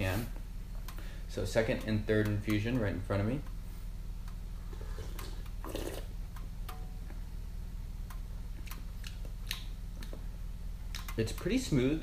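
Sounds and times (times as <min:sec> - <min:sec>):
steady low hum: 0:00.0 - 0:12.0
person slurping tea: 0:04.7 - 0:06.1.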